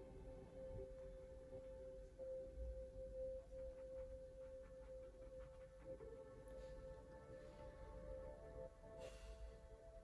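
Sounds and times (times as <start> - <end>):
faint ringing music tone: 0.0 - 10.0.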